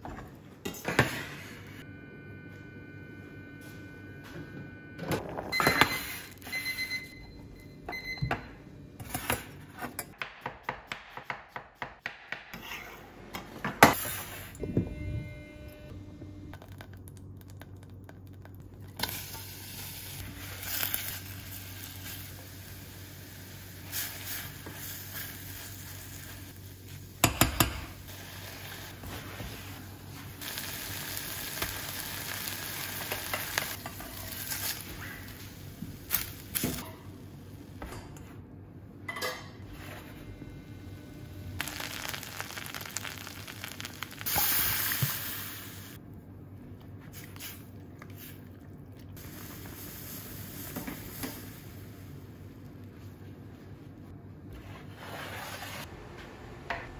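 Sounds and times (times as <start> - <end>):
onions sizzling in butter: 28.1 - 35.0, 41.6 - 46.0.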